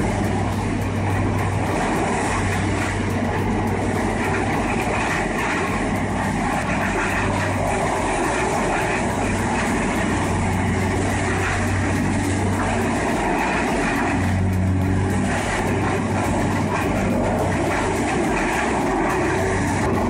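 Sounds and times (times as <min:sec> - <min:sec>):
low engine hum: 0:00.0 - 0:20.0
tub grinder grinding wood: 0:00.0 - 0:20.0.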